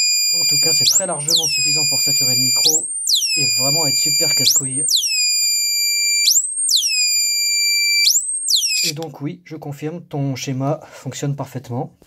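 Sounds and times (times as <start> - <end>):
shrill electronic siren: 0.0 - 9.0.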